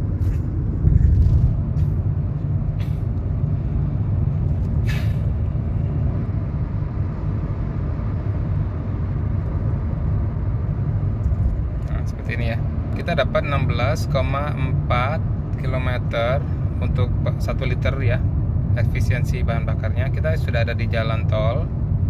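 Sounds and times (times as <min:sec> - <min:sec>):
car cabin road and engine rumble: 0:00.0 - 0:22.0.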